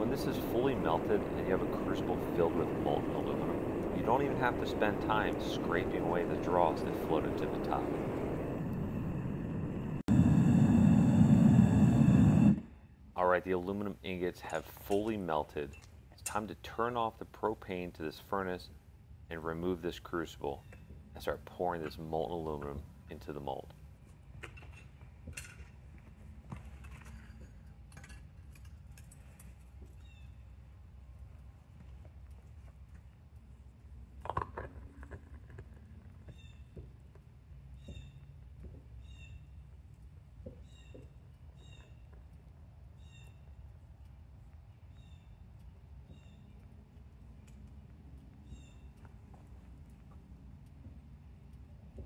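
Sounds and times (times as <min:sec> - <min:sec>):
low steady rumble: 0:00.0 - 0:24.3.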